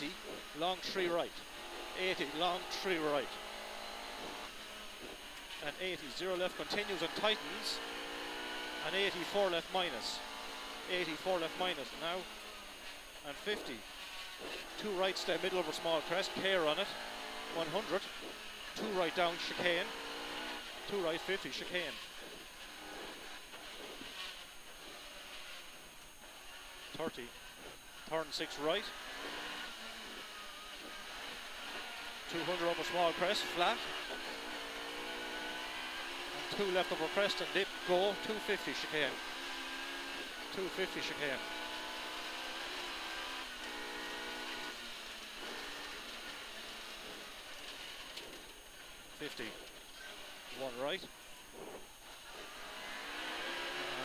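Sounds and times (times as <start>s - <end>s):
car engine and mechanical whine: 0.0s - 54.0s
wet road noise: 9.9s - 54.0s.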